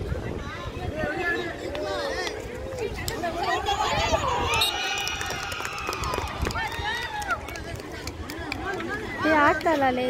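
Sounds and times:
voices shouting and calling out: 0.0 - 10.0.

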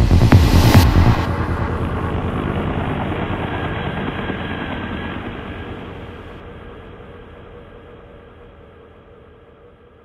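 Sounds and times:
electronic beat: 0.0 - 1.3
electronic rumble: 0.0 - 5.0.

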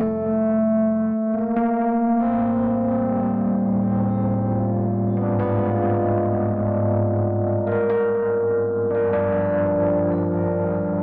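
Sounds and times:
electric piano jazz chords: 0.0 - 11.0.

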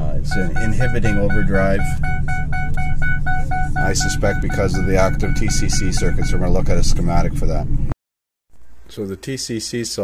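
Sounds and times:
truck engine rumble: 0.0 - 7.9
rapid electronic beeping: 0.3 - 7.5.

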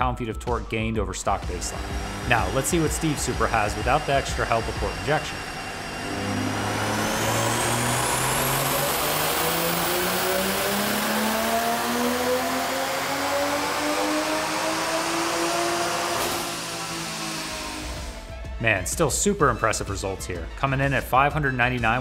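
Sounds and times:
car engine revving on dyno: 1.3 - 18.4.

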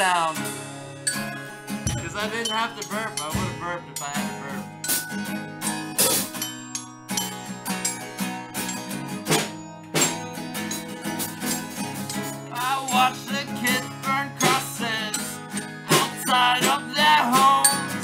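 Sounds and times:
electric guitar chords: 0.0 - 6.3
drum hits: 1.8 - 3.8
person singing over music: 1.9 - 4.7, 12.5 - 18.0.

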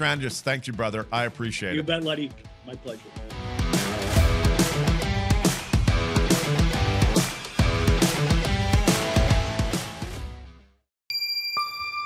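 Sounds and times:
guitar rock music: 2.6 - 10.4
bell-like chime notes: 11.1 - 12.0.

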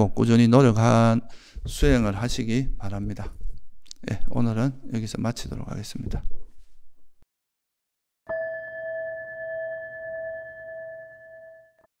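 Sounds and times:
singing bowl ringing: 8.3 - 11.9.

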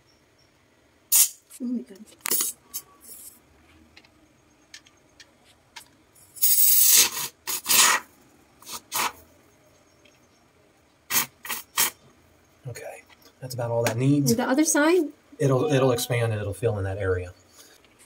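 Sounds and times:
aerosol foam spraying in bursts: 6.8 - 9.2, 11.1 - 12.0.

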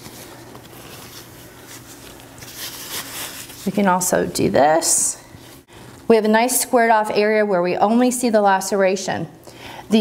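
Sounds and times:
cloth drapes rustling: 0.0 - 4.0
low steady hum: 0.0 - 10.0.

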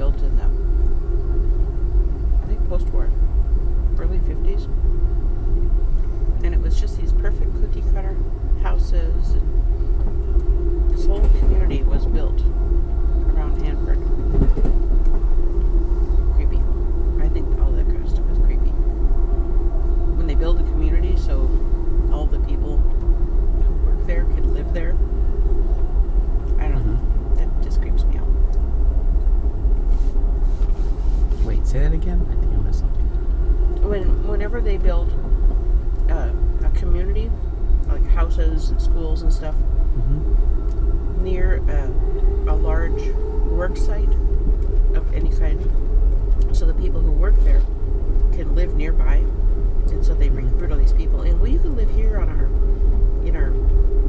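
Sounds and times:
constant hum: 0.0 - 54.0
train running rumble: 0.0 - 54.0
indistinct voices: 6.4 - 9.6, 10.2 - 15.4, 16.3 - 19.0, 20.0 - 22.9, 23.6 - 25.1, 26.4 - 28.6, 31.3 - 33.2, 33.8 - 35.2, 35.9 - 52.6.

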